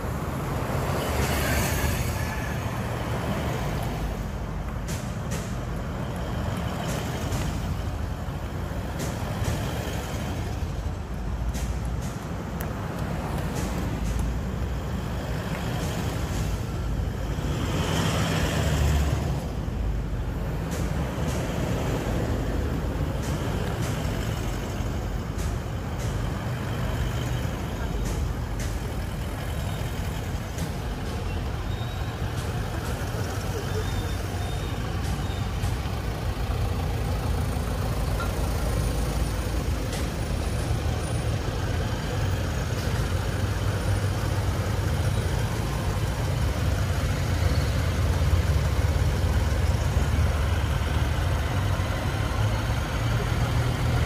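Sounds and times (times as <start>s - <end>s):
vehicles rumbling past: 0.0s - 54.0s.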